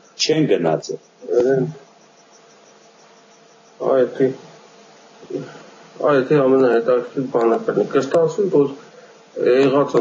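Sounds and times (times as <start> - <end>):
background hiss: 0.0 - 10.0
low steady hum: 0.0 - 10.0
man talking: 0.2 - 1.8, 3.8 - 4.5, 5.2 - 10.0.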